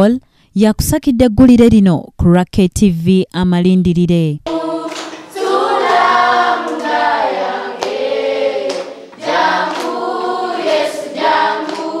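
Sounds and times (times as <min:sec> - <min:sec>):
children singing in chorus: 0:04.5 - 0:12.0
hand claps: 0:04.5 - 0:12.0.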